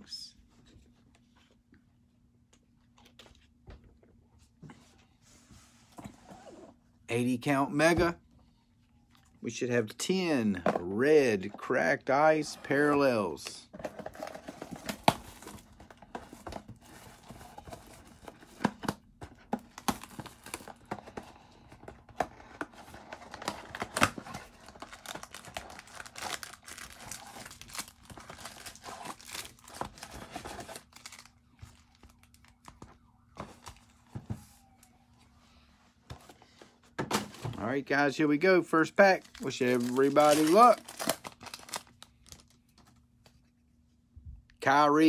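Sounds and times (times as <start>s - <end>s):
foil packs rustling: 22.6s - 32.8s, 38.9s - 42.9s
plastic wrap tearing and crinkling: 23.3s - 31.3s, 39.2s - 42.6s.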